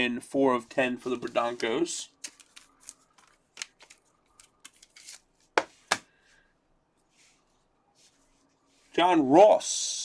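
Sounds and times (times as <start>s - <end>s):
cards and plastic holders clicking: 2.2s - 5.2s.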